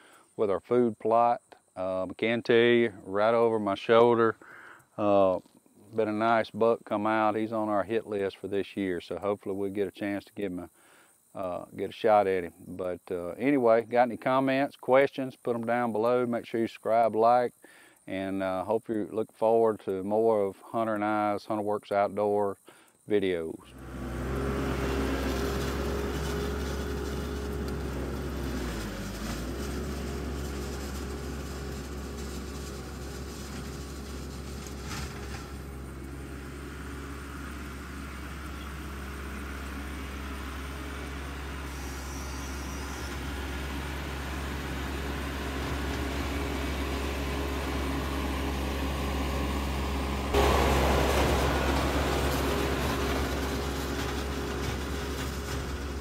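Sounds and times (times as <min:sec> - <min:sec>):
tractor diesel engine running: 0:23.7 - 0:56.0
loud rush of noise: 0:50.4 - 0:53.6.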